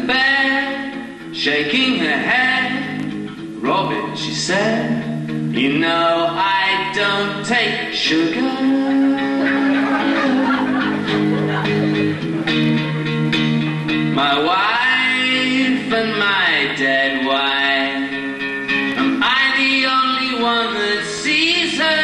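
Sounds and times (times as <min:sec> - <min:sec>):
man singing: 0:00.0 - 0:11.1, 0:14.1 - 0:22.0
acoustic guitar strumming: 0:00.0 - 0:22.0.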